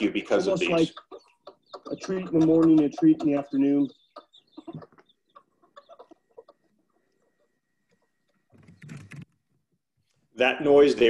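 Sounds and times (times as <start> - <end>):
chickens clucking softly: 0.0 - 8.8.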